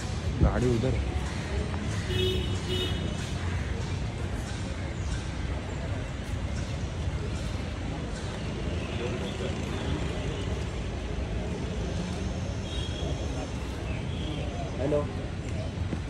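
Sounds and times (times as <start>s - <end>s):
murmur of voices: 0.0s - 16.0s
traffic rumble: 0.0s - 16.0s.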